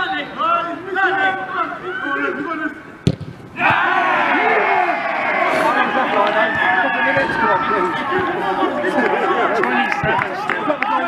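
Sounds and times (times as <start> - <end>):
crowd cheering and shouting: 3.6 - 11.0.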